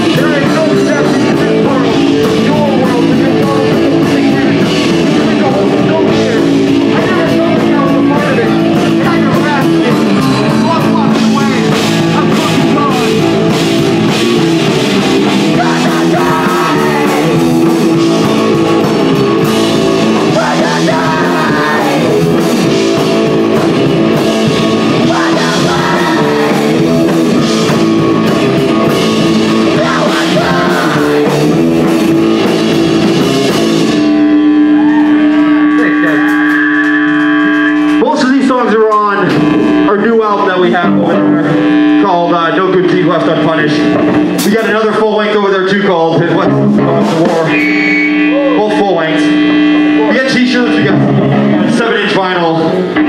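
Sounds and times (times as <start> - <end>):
drum kit with cymbals: 0.0 - 40.0, 46.3 - 48.3
punk rock band playing live: 0.0 - 53.0
electric guitar ringing note: 10.0 - 38.0, 39.2 - 44.4, 47.8 - 51.7.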